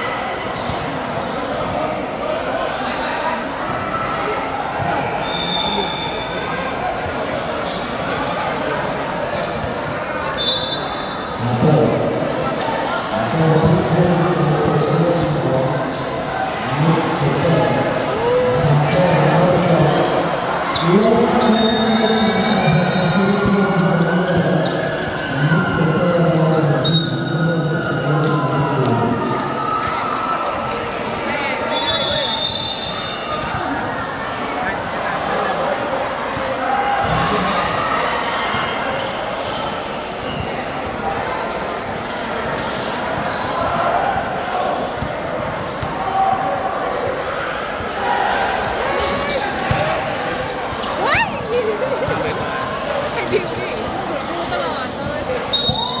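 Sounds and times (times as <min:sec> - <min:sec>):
sneakers squeaking on court: 0:08.8 - 0:11.2, 0:43.2 - 0:43.8, 0:44.7 - 0:56.0.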